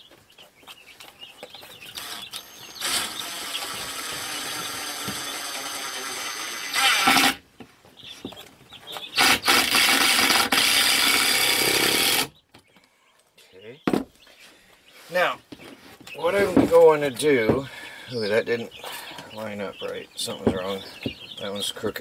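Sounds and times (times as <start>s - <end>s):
cordless drill driving screws: 2.0s - 7.4s, 9.2s - 12.3s.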